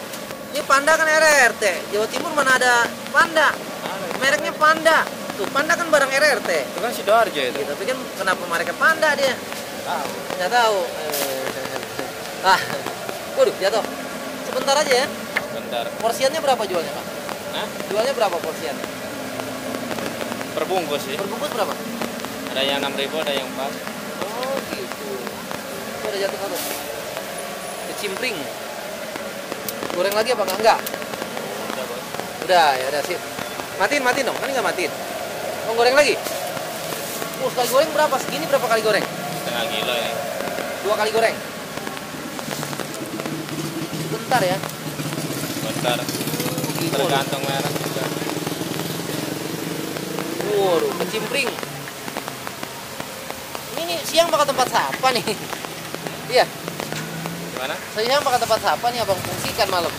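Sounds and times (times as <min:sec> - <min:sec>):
gas burner hiss: 0:00.0 - 0:59.9
hot oil sizzling and popping: 0:00.0 - 0:59.9.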